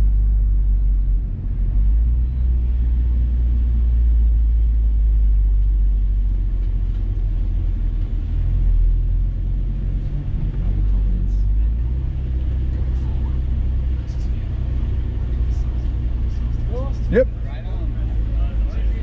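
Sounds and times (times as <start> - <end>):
car engine drone: 0.0 - 19.0
road noise inside car: 0.0 - 19.0.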